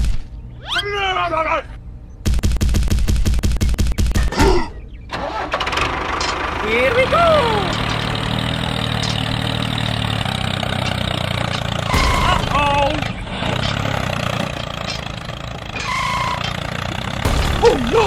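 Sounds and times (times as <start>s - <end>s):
tractor engine cranking and idling: 4.8s - 18.0s.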